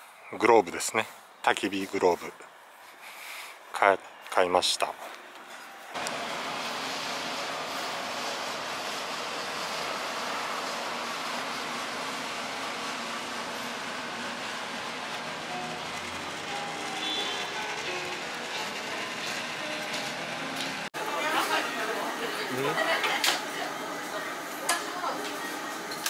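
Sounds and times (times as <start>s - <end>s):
outdoor traffic noise: 0.0s - 21.1s
background music: 15.4s - 20.9s.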